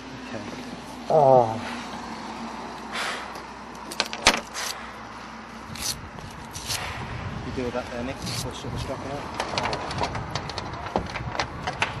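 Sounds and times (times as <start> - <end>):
gear rustling: 5.6 - 6.9.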